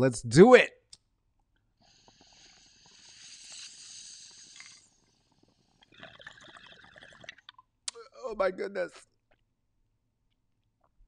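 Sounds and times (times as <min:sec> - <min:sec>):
hissing air and flame: 0:01.8 - 0:05.8
water bubbling in a bong: 0:01.8 - 0:07.7.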